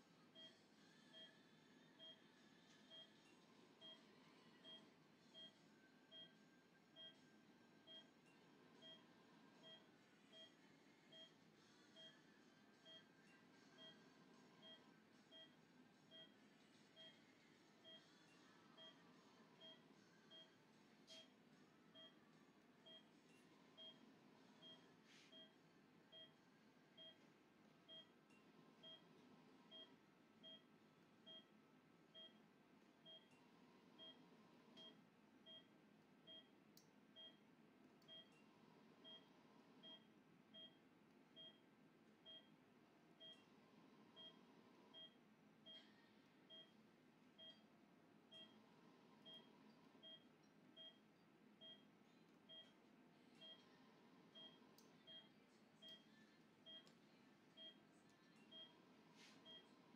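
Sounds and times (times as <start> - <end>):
faint room hum: 0.0 - 59.9
patient monitor short beeps: 36.3 - 36.5, 39.1 - 40.8, 42.3 - 42.5, 49.2 - 51.0, 51.6 - 51.8, 54.4 - 56.0, 58.4 - 58.7, 59.4 - 59.7.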